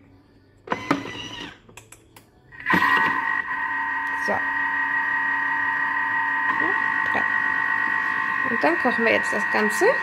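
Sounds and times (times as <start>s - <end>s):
mixing motor whining: 0.7s - 1.6s, 2.6s - 10.0s.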